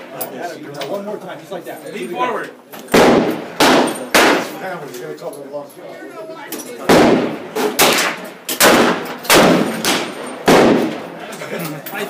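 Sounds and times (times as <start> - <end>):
gunshots with echo: 2.9 - 4.6, 6.8 - 11.2.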